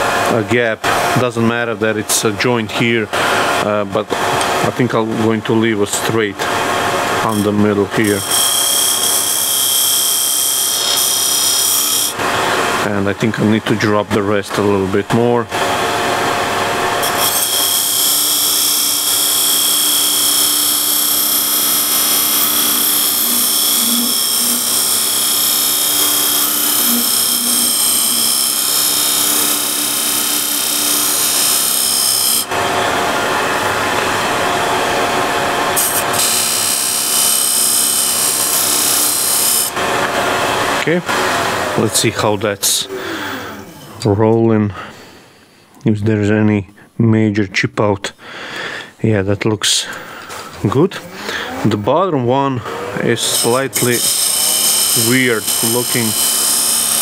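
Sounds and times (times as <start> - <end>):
lathe humming: 3.1 - 13.5, 14.5 - 44.1, 50.2 - 57.0
beading tool scraping wood: 17.0 - 32.4, 53.2 - 57.0.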